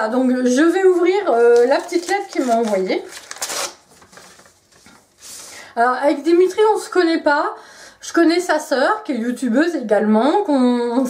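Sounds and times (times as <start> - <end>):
paper envelope rustling: 0.9 - 5.1.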